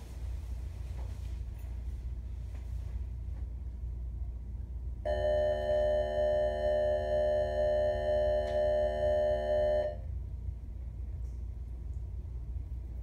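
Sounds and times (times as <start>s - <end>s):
electronic school bell tone: 5.1s - 10.0s.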